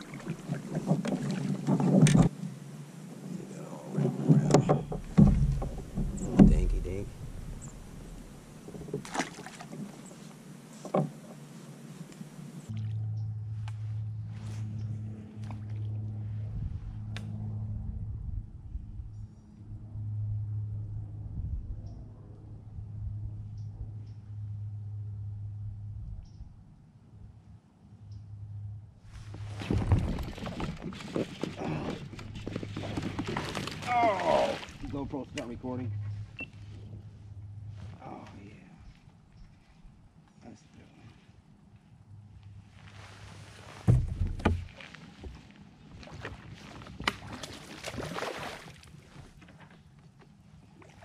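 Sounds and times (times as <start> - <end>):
handling bumps in kayak: 0.0 - 2.4, 3.9 - 12.5, 29.2 - 36.3, 43.2 - 50.4
steady low hum: 2.1 - 30.8, 34.5 - 45.6
sharp knocks on hull: 4.3 - 9.5, 43.9 - 44.7
fish splashing in water: 5.8 - 10.1, 29.4 - 34.9, 46.0 - 49.0.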